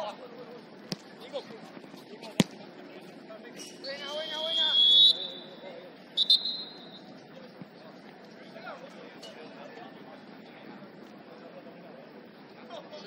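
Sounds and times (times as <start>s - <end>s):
ball being kicked: 0.9s - 1.2s, 2.3s - 2.6s
referee's whistle blasts: 3.8s - 5.6s, 6.2s - 7.0s.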